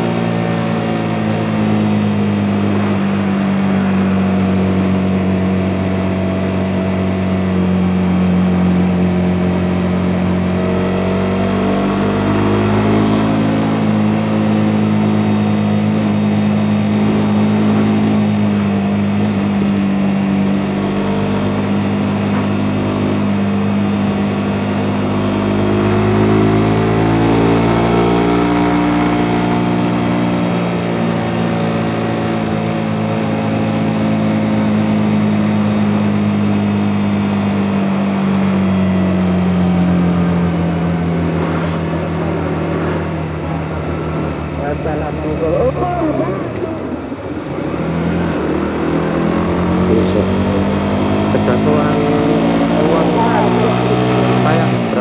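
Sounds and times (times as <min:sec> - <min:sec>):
motorcycle engine revving: 0:00.0 - 0:55.0.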